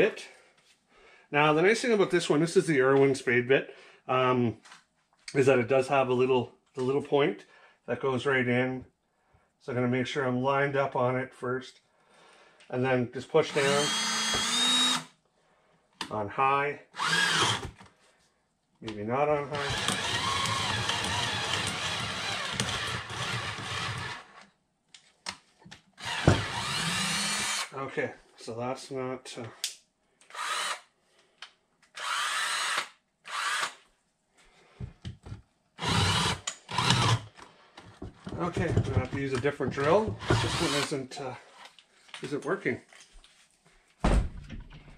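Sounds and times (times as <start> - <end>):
power drill motor whining: 13.5 - 15.1, 17.0 - 17.8, 19.6 - 24.4, 26.0 - 27.7, 30.3 - 30.8, 32.0 - 33.8, 35.8 - 37.4, 40.2 - 41.0.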